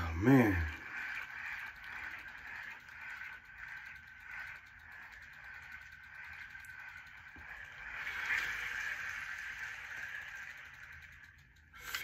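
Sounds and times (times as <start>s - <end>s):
small electric fan whirring: 0.0s - 12.0s.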